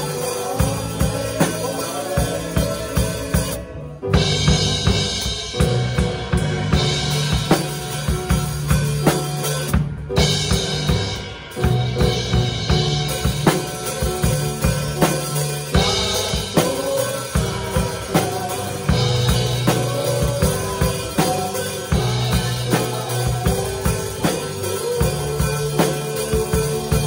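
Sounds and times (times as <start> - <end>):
cymbals: 0.0 - 27.0
sustained bass and keyboard notes: 0.0 - 27.0.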